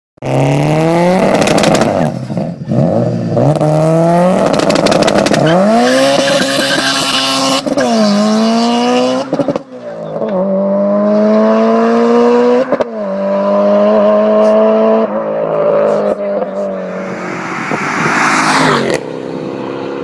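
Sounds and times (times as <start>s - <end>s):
car engine revving hard: 0.2s - 16.2s, 16.8s - 20.0s.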